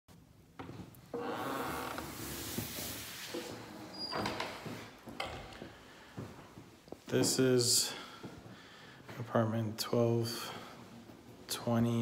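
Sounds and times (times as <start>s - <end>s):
door scraping: 1.1s - 5.4s.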